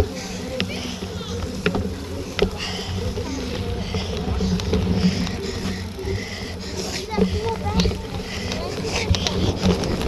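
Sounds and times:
bike rattling over dirt trail: 0.0 - 10.0
wind buffeting microphone: 0.0 - 10.0.

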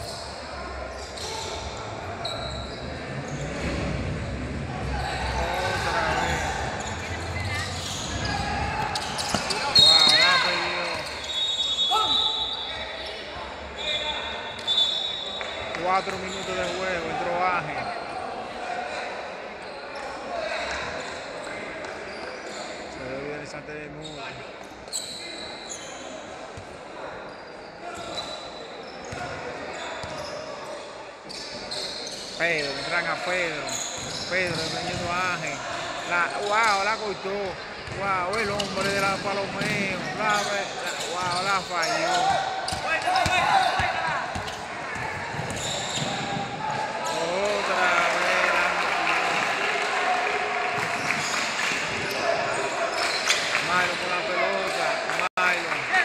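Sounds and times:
basketball bouncing on court: 7.8 - 10.2, 42.7 - 46.8.

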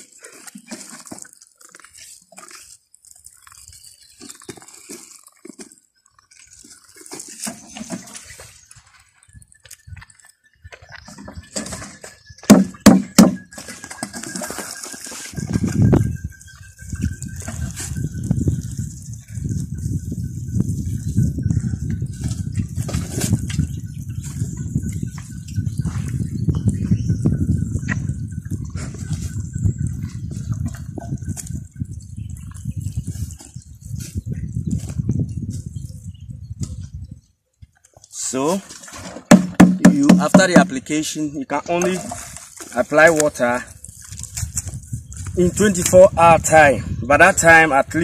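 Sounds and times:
sharp knocks: 12.4 - 13.5, 39.3 - 40.8
liquid splashing from watering can: 38.6 - 40.8, 41.7 - 44.5.

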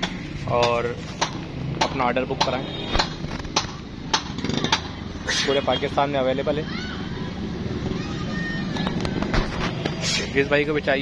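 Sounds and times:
sharp knocks: 0.0 - 5.0.

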